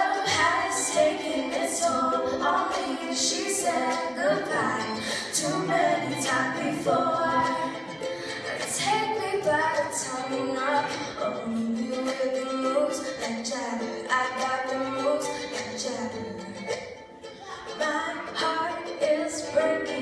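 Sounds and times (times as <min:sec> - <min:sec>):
woman singing: 0:00.0 - 0:16.8, 0:17.5 - 0:20.0
ukulele strumming: 0:00.0 - 0:20.0.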